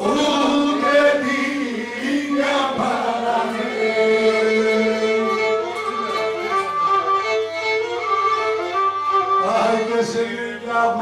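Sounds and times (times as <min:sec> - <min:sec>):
bowed fiddle melody: 0:00.4 - 0:11.0.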